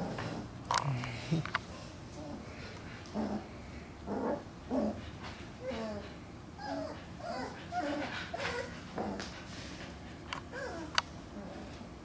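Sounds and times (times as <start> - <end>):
puppies vocalizing: 4.2 - 11.6.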